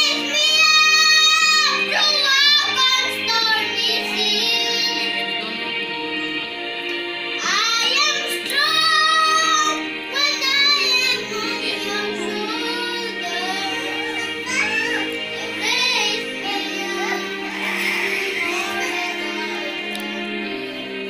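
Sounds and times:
boy singing: 0:00.0 - 0:05.6, 0:07.4 - 0:21.0
instrumental backing music: 0:00.0 - 0:21.0.

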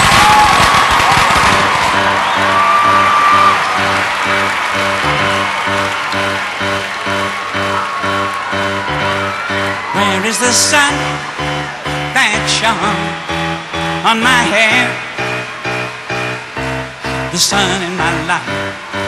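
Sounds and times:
crowd cheering and whistling: 0:00.0 - 0:19.0
live band playing pop intro: 0:00.0 - 0:19.0.

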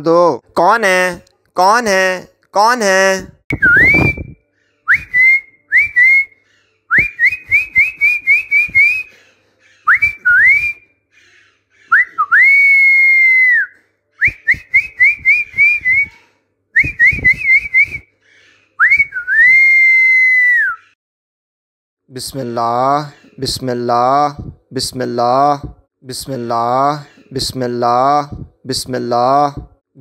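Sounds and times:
person whistling a tune: 0:03.5 - 0:06.3, 0:06.9 - 0:09.1, 0:09.9 - 0:10.8, 0:11.9 - 0:16.2, 0:16.8 - 0:18.1, 0:18.8 - 0:20.8.

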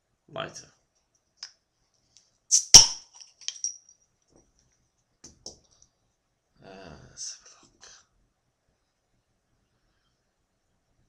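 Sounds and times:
bottle cap hiss and pop: 0:02.5 - 0:03.7
light glass clinks: 0:02.8 - 0:03.9.

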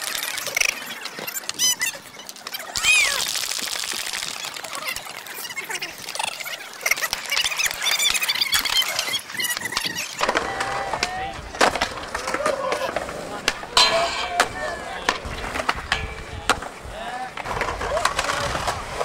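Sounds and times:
skateboard wheels rolling: 0:00.0 - 0:19.0
skateboard pops and slaps: 0:09.0 - 0:19.0
board sliding on metal rail: 0:10.1 - 0:19.0.

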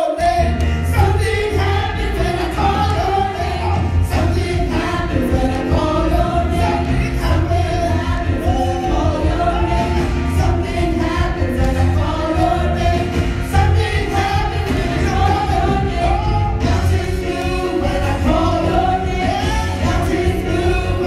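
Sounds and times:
group singing gospel: 0:00.0 - 0:21.0
instrumental accompaniment: 0:00.1 - 0:21.0.

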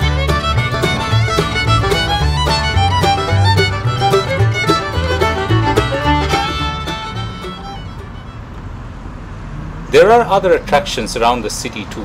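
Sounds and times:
rumble of passing cars: 0:00.0 - 0:12.0.

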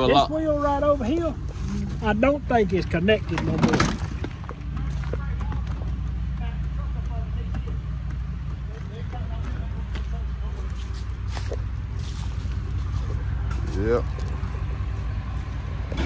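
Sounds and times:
vehicle engine idling: 0:00.0 - 0:16.0
faint voices talking: 0:04.3 - 0:12.1.

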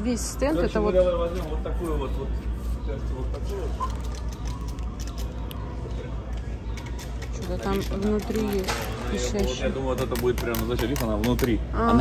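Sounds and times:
plush toy clicks and rustles: 0:06.8 - 0:09.4.

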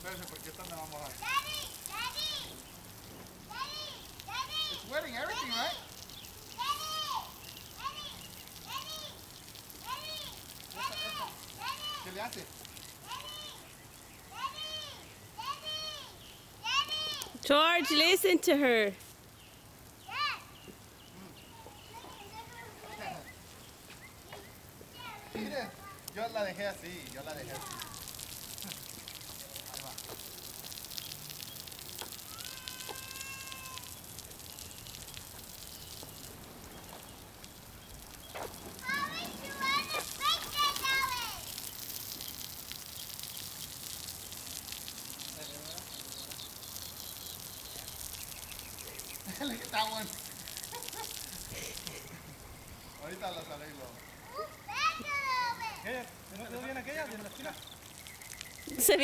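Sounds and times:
lawn sprinkler spraying water: 0:00.0 - 0:59.0
child shouting: 0:01.2 - 0:02.6, 0:03.5 - 0:05.9, 0:06.6 - 0:09.2, 0:09.8 - 0:12.2, 0:13.0 - 0:13.7, 0:14.3 - 0:18.0, 0:20.1 - 0:20.6, 0:21.5 - 0:23.2, 0:25.0 - 0:26.1, 0:27.4 - 0:28.1, 0:32.2 - 0:34.0, 0:38.8 - 0:41.5, 0:54.2 - 0:55.9.

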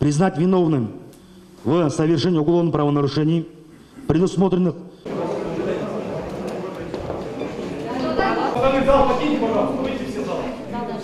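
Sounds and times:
chatter of many people: 0:05.0 - 0:11.0.

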